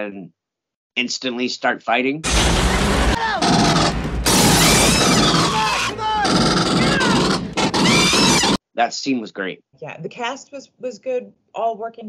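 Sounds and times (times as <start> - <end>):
explosions: 2.2 - 8.6
rapid gunfire: 2.3 - 8.6
high gliding shrieks: 2.9 - 8.6
voices shouting: 3.1 - 8.6.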